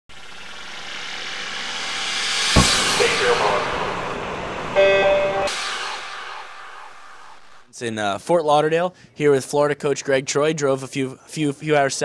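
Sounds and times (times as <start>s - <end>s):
noisy rush: 0.1s - 7.7s
short pitched chord: 0.1s - 7.7s.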